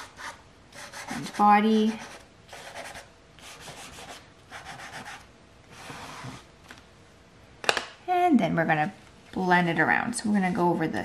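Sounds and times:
pastel rubbing on paper: 0.0 - 6.4.

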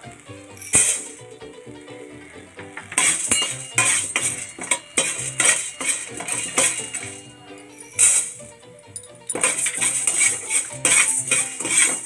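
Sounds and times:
background music: 0.0 - 12.0
metal spoon scraping a pan: 0.6 - 1.2, 2.8 - 8.6, 9.3 - 12.0.

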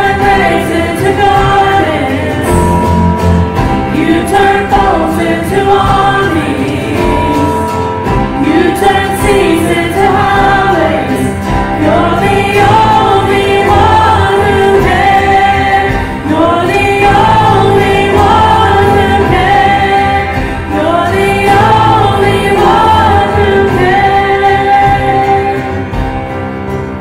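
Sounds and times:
group singing worship song: 0.0 - 26.6
band accompaniment: 0.0 - 27.0.

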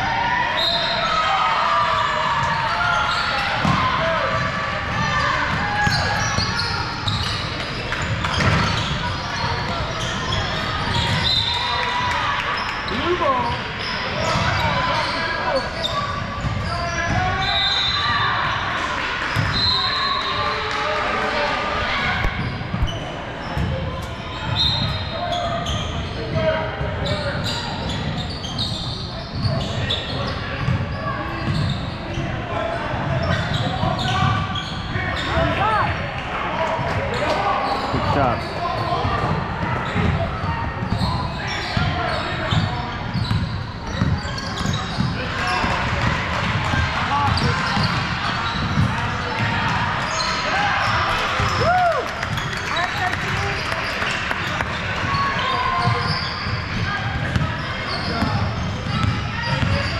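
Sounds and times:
echoing chatter of people: 0.0 - 59.9.

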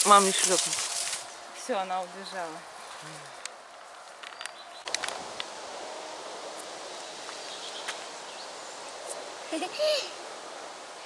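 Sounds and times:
leaves rustling in wind: 0.0 - 11.0.

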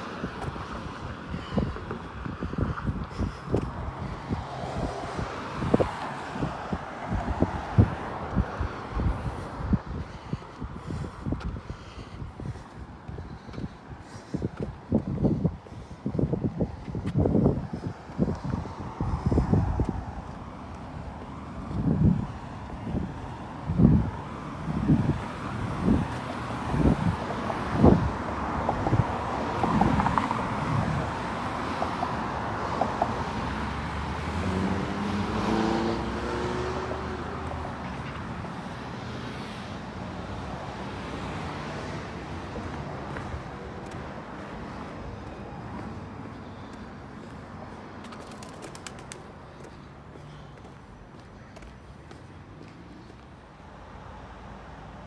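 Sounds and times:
car passing: 0.0 - 14.5, 17.4 - 55.0
road traffic noise: 0.0 - 55.0.

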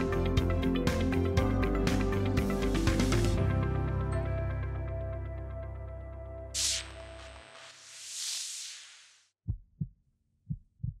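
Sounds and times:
whoosh: 6.6 - 9.3
heartbeat thumps: 9.4 - 11.0.

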